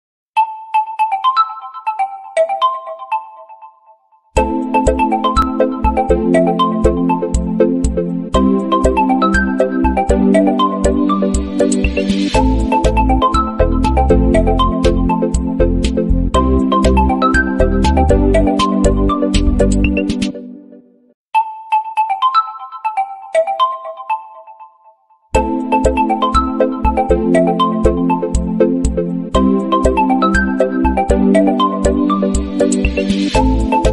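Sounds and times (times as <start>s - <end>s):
phone ringtone melody: 0.4s - 15.5s, 16.4s - 20.0s, 21.4s - 28.4s, 29.4s - 33.9s.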